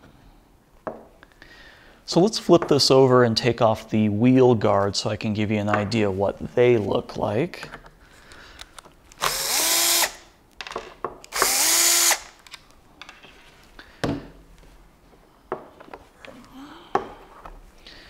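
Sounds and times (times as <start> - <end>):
power driver spinning: 9.2 - 10.2, 11.3 - 12.3.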